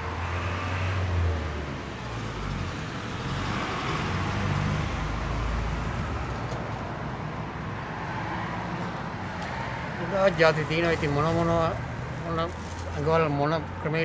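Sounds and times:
vehicle engine and road rumble: 0.0 - 14.0.

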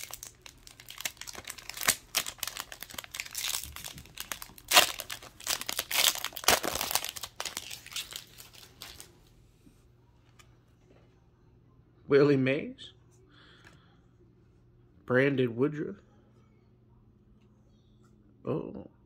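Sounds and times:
foil wrapper tearing and crinkling: 0.0 - 9.1.

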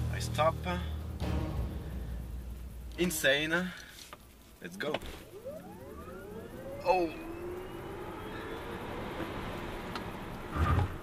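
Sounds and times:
road and tyre noise: 0.0 - 11.0
electric motors whining: 4.8 - 10.6.

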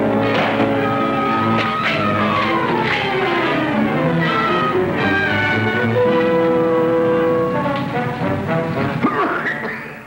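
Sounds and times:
orchestral music with brass: 0.0 - 9.8.

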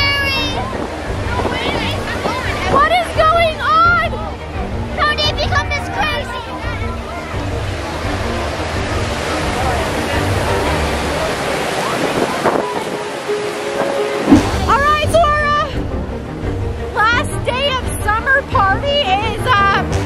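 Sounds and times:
voices: 0.0 - 4.4.

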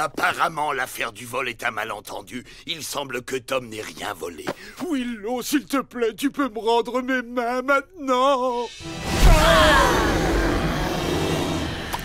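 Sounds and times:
loud rumbling roar: 8.8 - 12.0.

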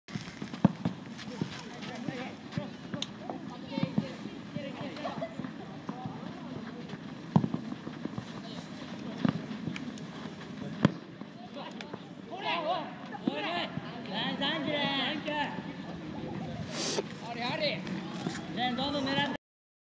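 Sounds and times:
footballs kicked thuds: 0.1 - 4.1, 4.8 - 9.8, 10.7 - 11.3.

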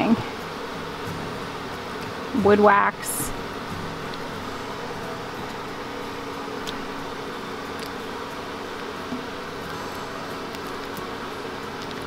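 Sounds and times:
honey bees humming: 0.0 - 12.0.

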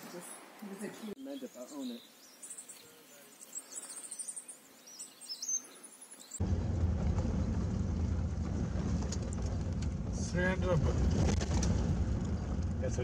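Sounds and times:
small birds chirping: 0.0 - 6.4
vehicle driving rumble: 6.4 - 13.0.

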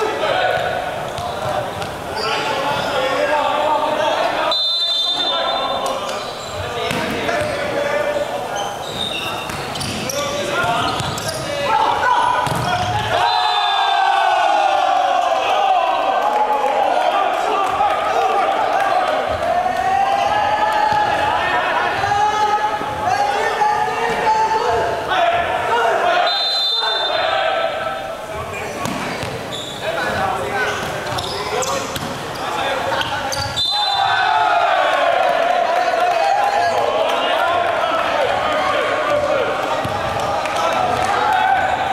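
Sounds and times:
players shouting and cheering: 0.0 - 41.9
volleyball smacks echoing: 6.8 - 7.5, 12.4 - 13.2, 28.8 - 29.4
volleyball being hit: 12.4 - 12.8.

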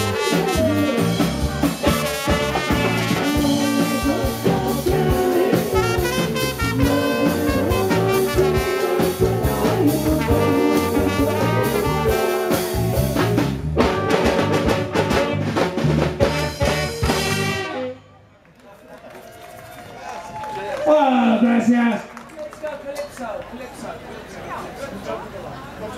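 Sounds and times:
live band playing ska: 0.0 - 18.1.

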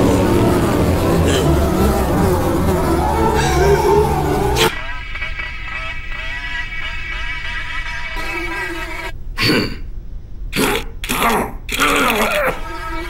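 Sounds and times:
cartoon fly buzzing: 0.0 - 4.8, 6.2 - 9.2, 12.5 - 13.0
sound effects and music: 0.0 - 5.0.

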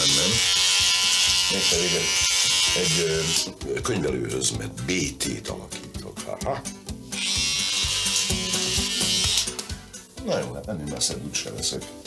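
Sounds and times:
electric shaver buzzing: 0.0 - 3.6, 7.1 - 9.9
background music: 0.0 - 12.0.

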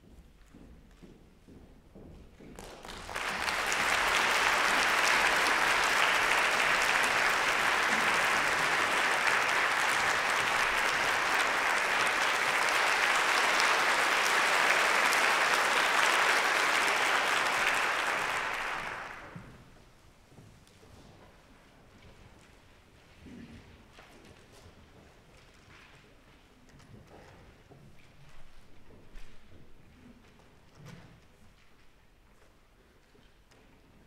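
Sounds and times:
audience applauding: 2.6 - 19.6.

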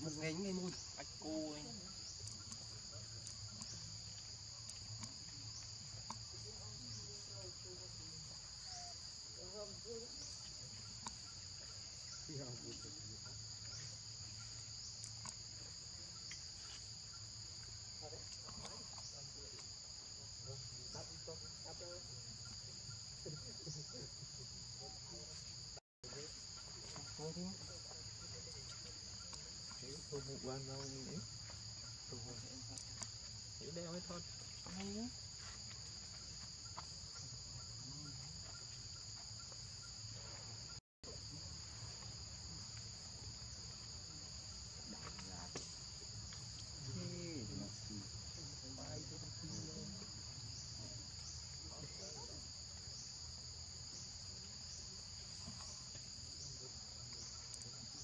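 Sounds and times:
insects droning: 0.0 - 58.0.

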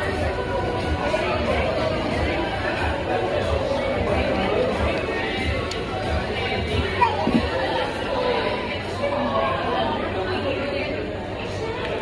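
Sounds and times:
many people talking: 0.0 - 12.0.

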